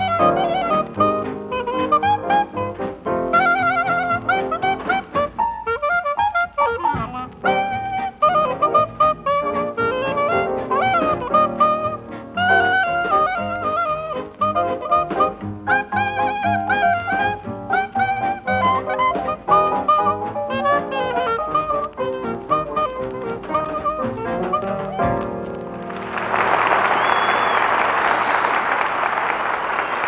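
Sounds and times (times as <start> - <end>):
trombone: 0.0 - 25.5
jazz band playing: 0.0 - 27.0
trumpet: 0.0 - 28.3
clarinet: 0.0 - 28.5.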